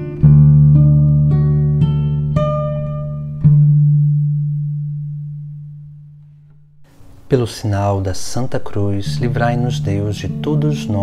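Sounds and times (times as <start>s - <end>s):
low acoustic guitar note ringing: 8.1s - 10.9s.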